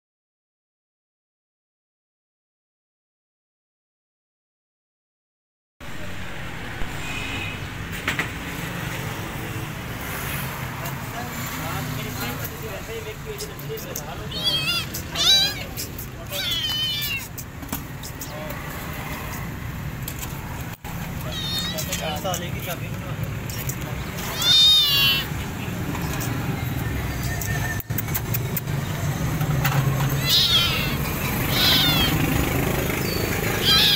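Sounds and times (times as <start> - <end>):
street traffic rumble: 5.8 - 33.9
kitten meowing: 13.4 - 18.4, 21.2 - 22.3, 24.2 - 25.4, 30.0 - 32.4, 33.6 - 33.9.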